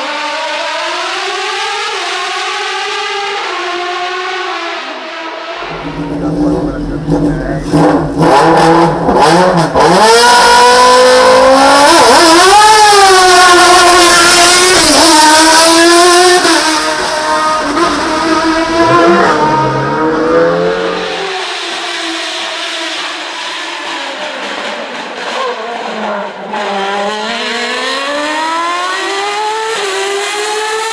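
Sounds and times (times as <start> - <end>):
race car accelerating through gears: 0.0 - 30.9.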